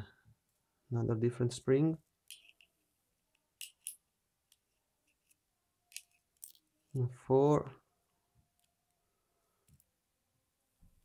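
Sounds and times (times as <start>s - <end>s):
tweezers clicking on lock pins: 2.3s - 2.7s, 3.6s - 4.6s.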